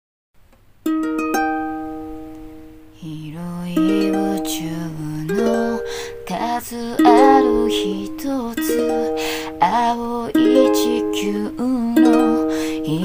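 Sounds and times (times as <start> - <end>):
ukulele playing: 0.8 - 13.0
woman singing: 3.0 - 13.0.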